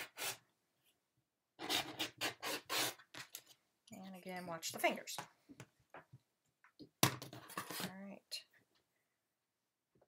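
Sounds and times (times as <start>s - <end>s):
woman speaking: 3.9s - 5.3s, 7.8s - 8.6s.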